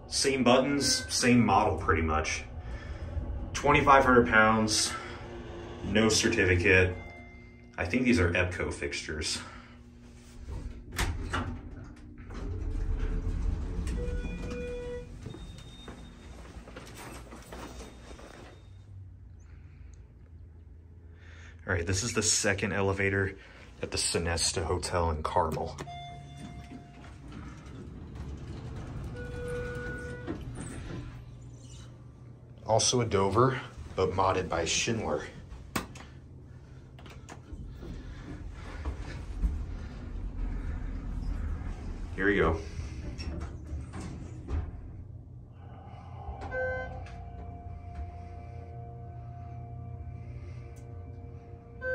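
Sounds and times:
elevator doors sliding open: 0.0s - 18.9s, 23.5s - 51.9s
elevator low rumble: 0.0s - 51.9s
short electronic tone: 5.8s - 7.8s.

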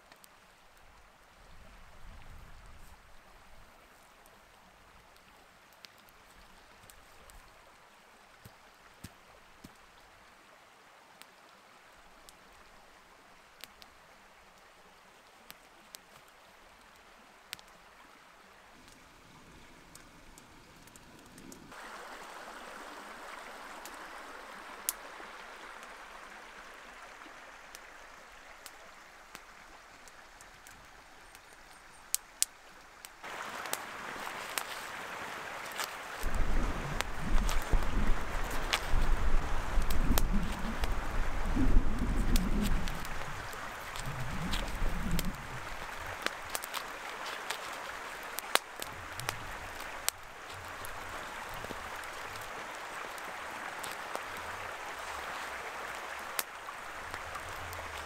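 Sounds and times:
campfire crackling: 0.0s - 58.0s
brook rushing over rocks: 33.2s - 58.0s.

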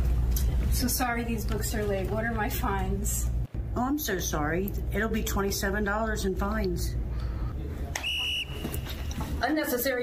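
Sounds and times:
referee's whistle blast: 8.0s - 9.0s.

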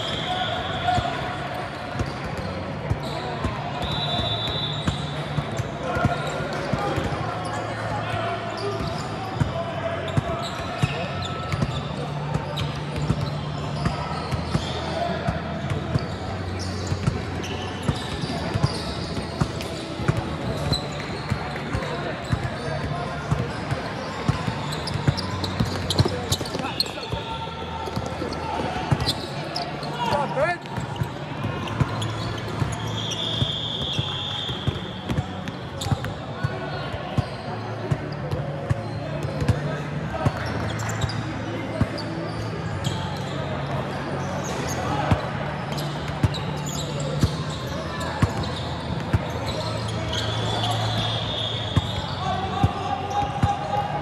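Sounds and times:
shoe squeals: 0.0s - 54.0s.

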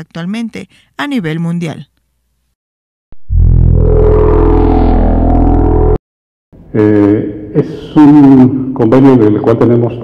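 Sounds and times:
deep electronic drone chord: 3.2s - 6.0s.

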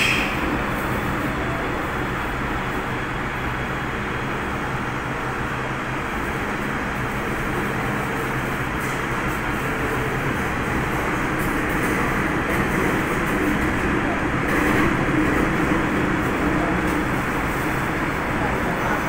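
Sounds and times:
wheels rumbling on rail: 0.0s - 19.0s.

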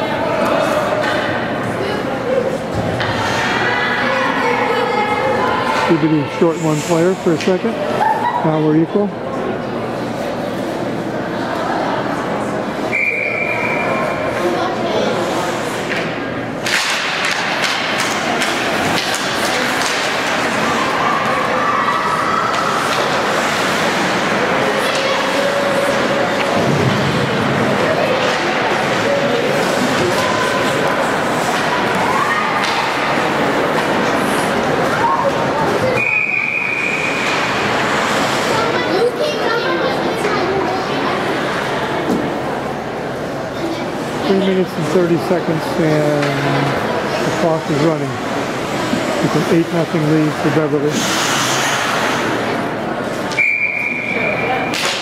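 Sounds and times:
hockey stick and puck clacks: 15.7s - 21.5s, 22.4s - 27.2s, 28.1s - 34.1s, 37.2s - 38.5s, 54.6s - 55.0s.

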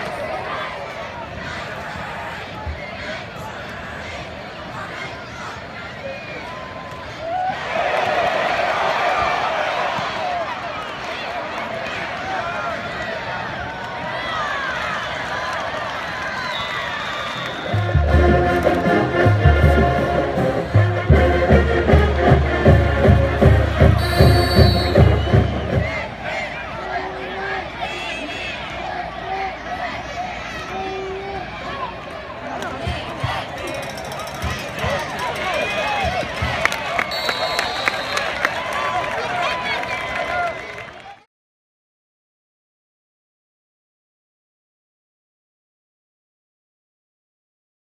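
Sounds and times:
stadium crowd cheering: 0.0s - 41.3s
marching band playing: 17.7s - 26.0s
bass drums beating: 17.8s - 25.9s.

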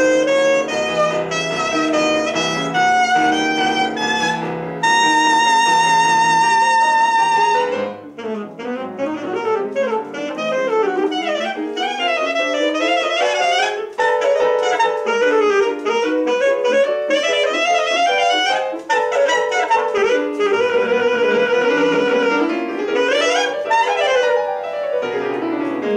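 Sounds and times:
piano accompaniment: 0.0s - 25.9s
saxophone playing fast runs: 0.0s - 25.9s.

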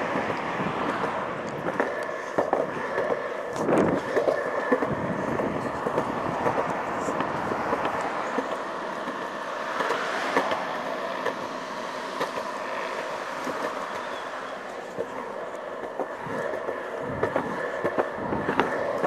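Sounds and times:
wheels rolling over pavement: 0.0s - 19.0s.

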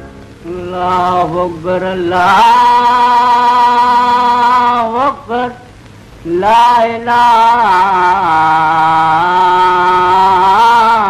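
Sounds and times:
man singing prayer melody: 0.4s - 11.0s.

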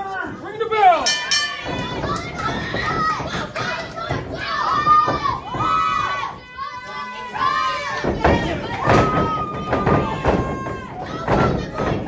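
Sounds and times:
children shouting: 1.3s - 12.0s.

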